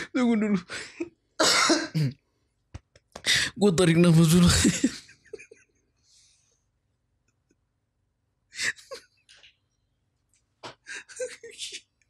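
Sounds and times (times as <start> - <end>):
man coughing: 1.4 - 2.2.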